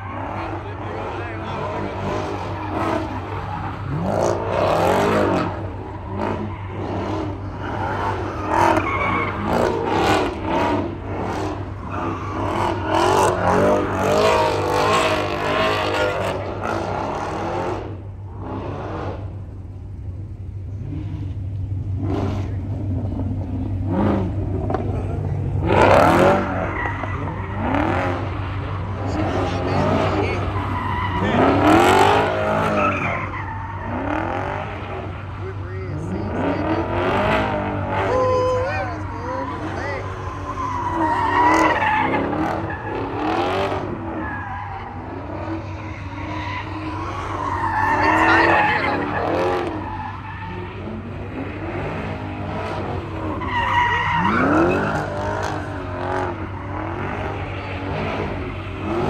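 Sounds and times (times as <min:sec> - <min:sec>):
car engines revving: 0:00.0 - 0:59.0
crowd voices: 0:00.0 - 0:59.0
tires screeching: 0:00.0 - 0:59.0.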